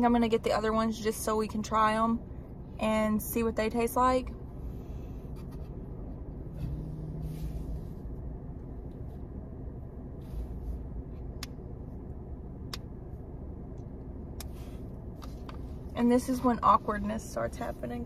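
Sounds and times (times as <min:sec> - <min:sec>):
car idling: 0:00.0 - 0:18.0.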